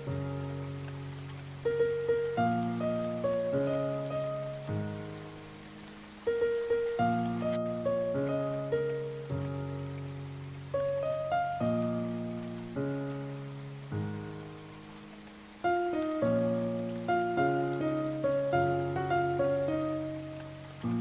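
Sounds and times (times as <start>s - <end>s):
rain pattering: 0.0s - 21.0s
solo piano chords and melody: 0.0s - 21.0s.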